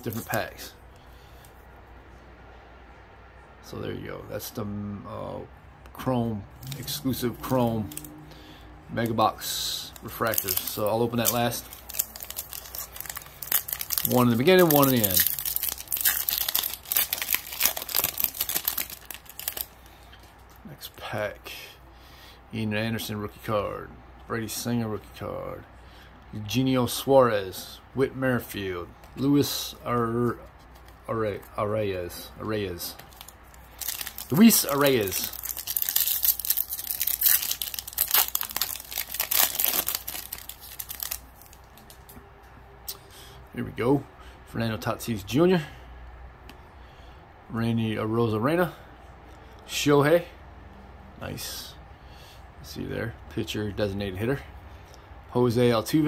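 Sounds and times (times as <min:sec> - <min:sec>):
wrapper crinkling and tearing: 0:00.0 - 0:00.7, 0:06.6 - 0:08.2, 0:09.0 - 0:20.6, 0:32.9 - 0:42.1.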